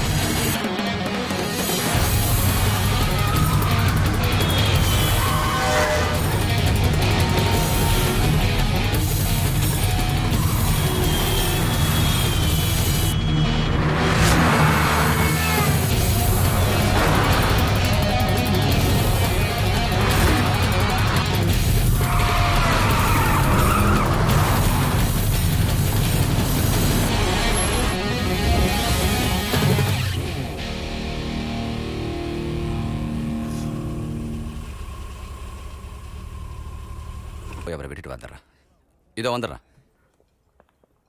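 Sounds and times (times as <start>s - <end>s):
dramatic background music: 0.0s - 35.0s
speeding cars: 2.1s - 29.8s.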